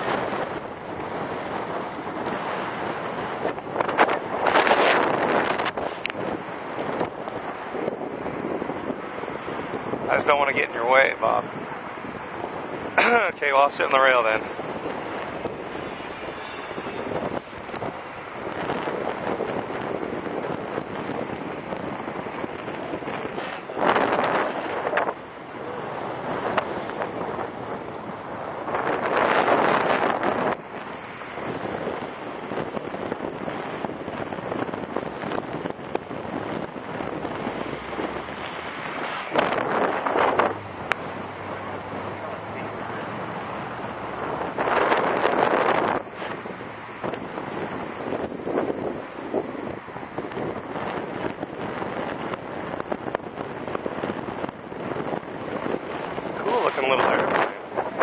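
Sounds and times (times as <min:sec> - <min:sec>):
wind blowing across microphone: 0:00.0 - 0:58.0.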